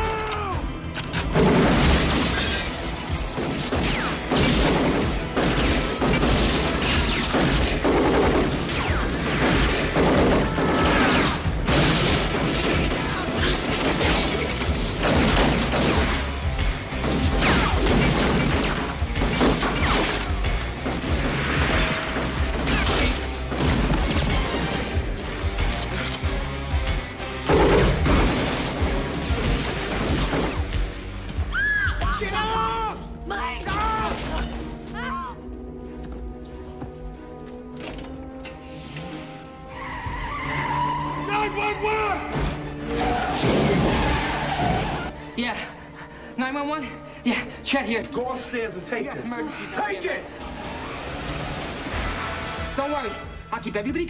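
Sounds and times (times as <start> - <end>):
film score music: 0.0 - 54.0
gunfire: 3.5 - 16.4, 27.4 - 30.8
tyres screeching: 39.6 - 45.3.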